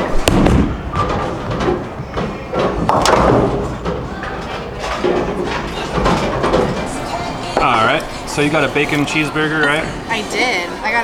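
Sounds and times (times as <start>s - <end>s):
bowling pins crashing: 0.0s - 7.7s
bowling balls rumbling: 0.0s - 10.1s.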